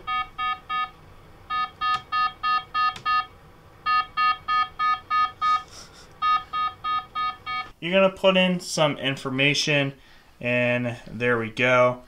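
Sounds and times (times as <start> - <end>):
rapid electronic alarm beeping: 1.5 - 3.3, 3.9 - 7.7.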